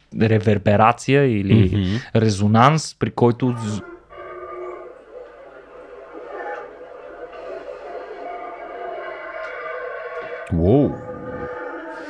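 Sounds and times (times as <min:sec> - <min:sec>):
howler monkey howling: 0:03.5 - 0:12.0.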